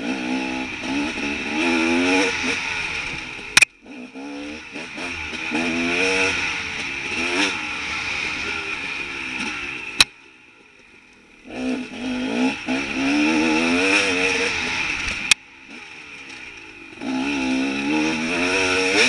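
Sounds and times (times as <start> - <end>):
dirt bike engine revving: 0.0 - 10.4, 11.3 - 19.0.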